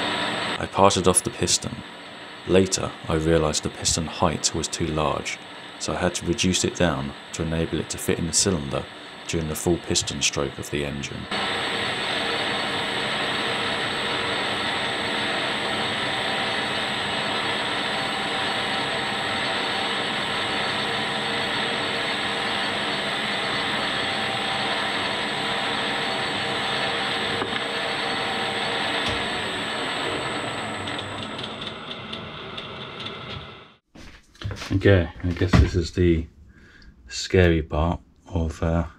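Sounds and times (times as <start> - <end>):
metal lathe humming and whining: 0.0 - 33.8.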